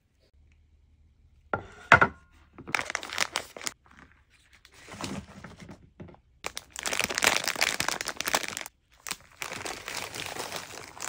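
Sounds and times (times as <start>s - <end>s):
plastic bags crinkling: 2.6s - 5.3s, 6.4s - 11.0s.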